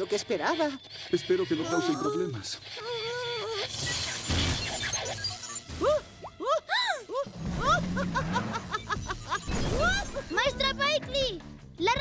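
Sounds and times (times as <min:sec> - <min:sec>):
music: 0:04.3 - 0:12.0.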